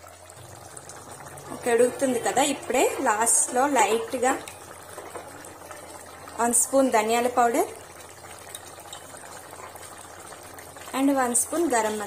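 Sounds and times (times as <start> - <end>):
curry bubbling in a pot: 0.0 - 12.0.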